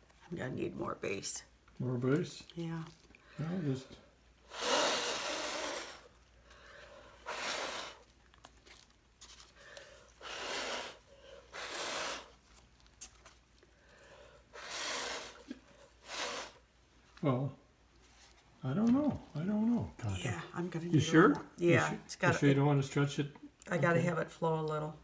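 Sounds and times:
puffs of air through a straw: 4.4 - 6.2, 6.9 - 8.1, 10.1 - 12.4, 14.4 - 16.6.

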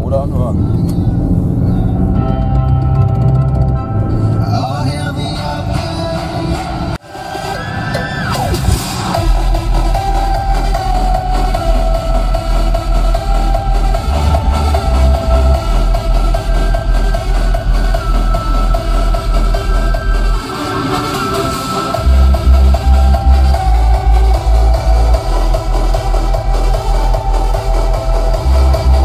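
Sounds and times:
bass-heavy electronic music: 0.0 - 29.0.

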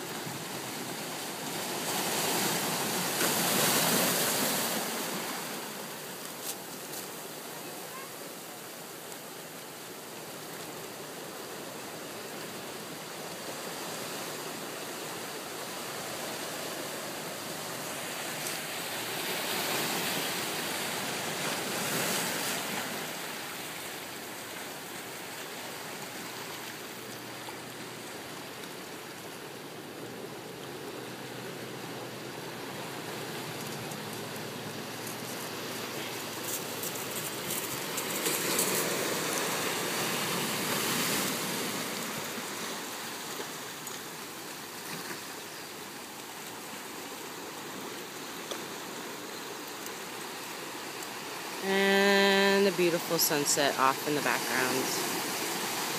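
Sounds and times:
surf breaking over rocks: 0.0 - 55.9.

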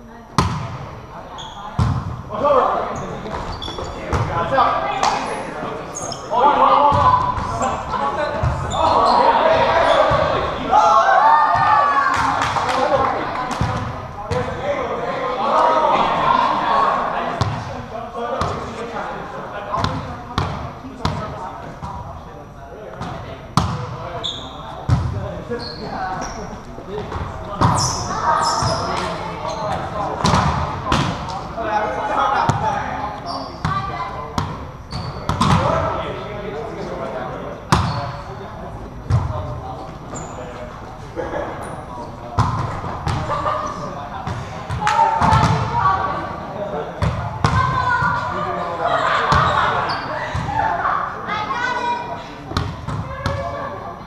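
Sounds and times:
players' voices: 0.0 - 54.0
sneaker squeaks: 1.2 - 2.0, 2.9 - 4.3, 5.0 - 10.4, 23.6 - 30.4, 33.2 - 35.7, 37.7 - 38.4, 39.8 - 40.8, 41.5 - 44.4, 49.3 - 50.6
volleyball hits: 35.2 - 35.8, 44.2 - 45.8.

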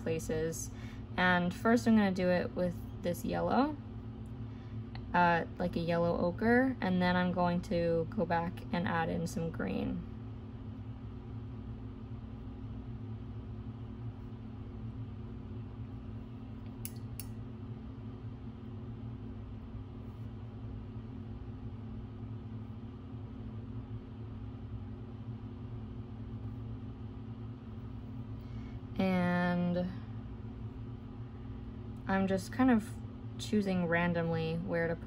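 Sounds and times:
low room hum with tones: 0.0 - 35.0.

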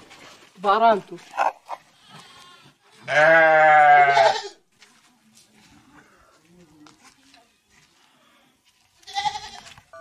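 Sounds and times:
goat bleating: 1.7 - 4.6, 9.0 - 9.8.

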